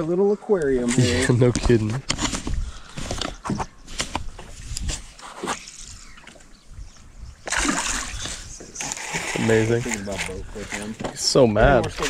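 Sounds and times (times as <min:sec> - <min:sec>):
fish splashing in water: 0:07.4 - 0:10.8.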